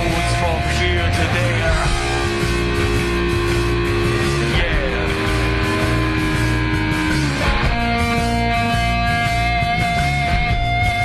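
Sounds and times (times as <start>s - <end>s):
electric guitar holding long notes: 0.0s - 11.0s
pounding rhythm section: 0.0s - 11.0s.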